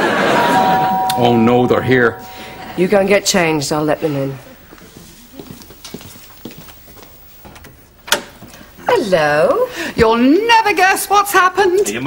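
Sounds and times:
footsteps walking: 4.6 - 7.8.

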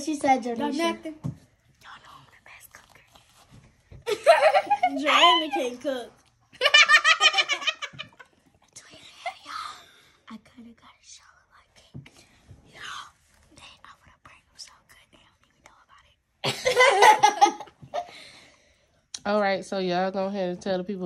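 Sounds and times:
girls whispering: 1.7 - 3.2, 8.6 - 16.2
girls giggling: 4.0 - 5.9, 6.5 - 8.4, 16.4 - 18.5.

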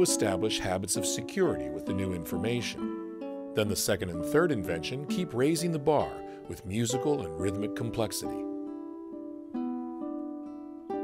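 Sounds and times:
slow classical guitar: 0.0 - 11.0.

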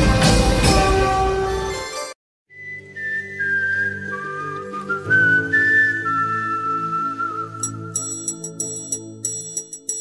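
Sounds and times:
high pure-toned melody: 6.2 - 10.0.

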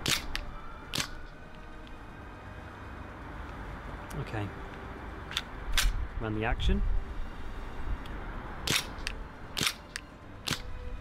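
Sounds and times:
airsoft pistol shots: 0.0 - 1.2, 8.6 - 10.7.

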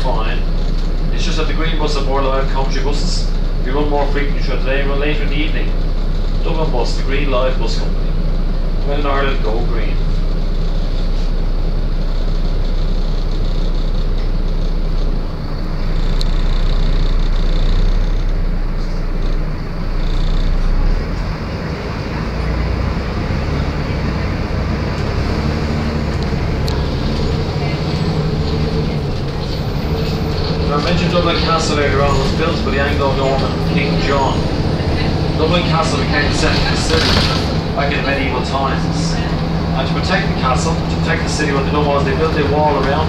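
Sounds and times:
diesel engine drone: 0.0 - 43.0
road noise: 0.0 - 43.0.

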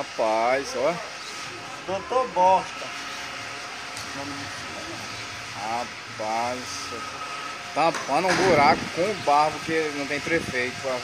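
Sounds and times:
cabin hiss with low hum: 0.0 - 11.0.

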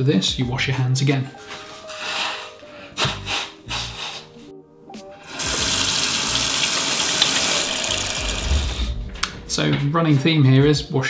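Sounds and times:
man blowing his nose: 1.9 - 4.4
tap running into sink: 5.4 - 8.8.

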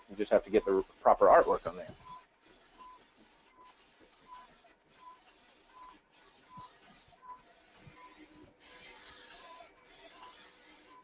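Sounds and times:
printer running: 0.0 - 11.0.

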